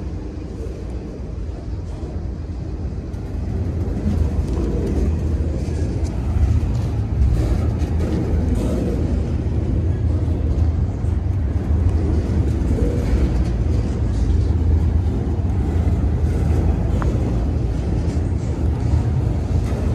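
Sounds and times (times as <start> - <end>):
train wheels rumbling on rail: 0.0 - 19.9.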